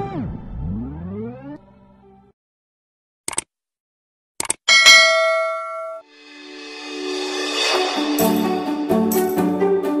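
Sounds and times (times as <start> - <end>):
notification bell ding: 4.7 - 6.0.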